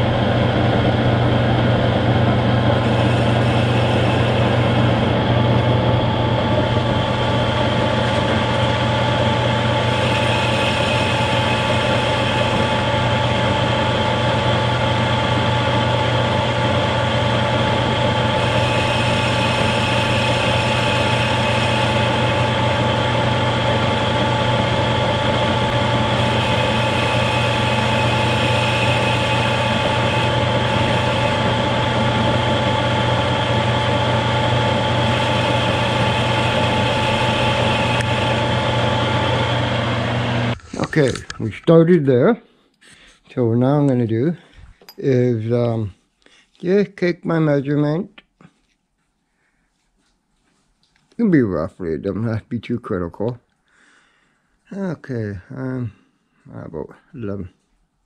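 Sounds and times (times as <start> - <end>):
metal lathe motor humming: 0.0 - 41.1
thin high whine: 0.0 - 41.5.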